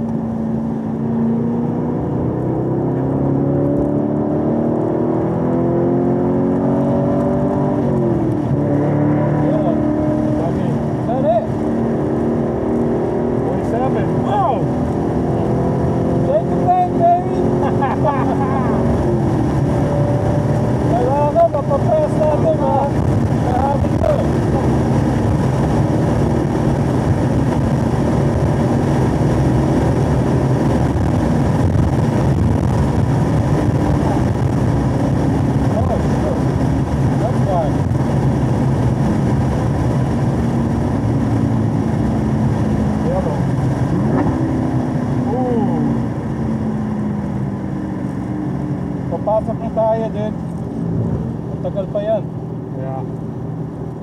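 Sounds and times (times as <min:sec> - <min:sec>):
car engine at high revs: 0:00.0 - 0:54.0.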